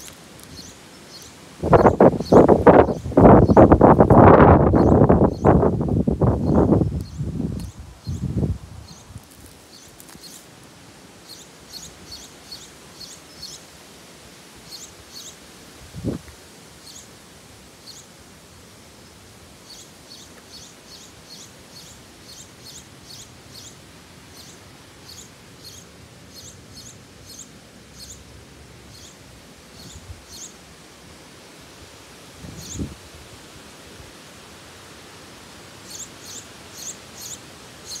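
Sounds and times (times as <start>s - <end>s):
small songbird chirping: 0.0s - 5.7s, 6.3s - 10.5s, 11.2s - 13.7s, 14.7s - 15.4s, 16.8s - 17.1s, 17.8s - 18.1s, 19.6s - 28.3s, 28.9s - 30.6s, 32.5s - 32.9s, 35.8s - 38.0s.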